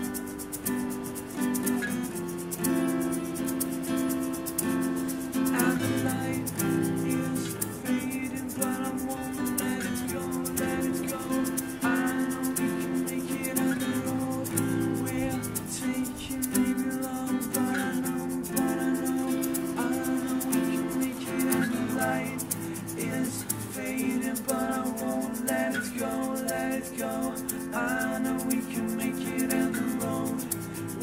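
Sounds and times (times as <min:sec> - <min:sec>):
acoustic guitars strummed: 0:00.0 - 0:31.0
egg shaker rhythm: 0:00.0 - 0:31.0.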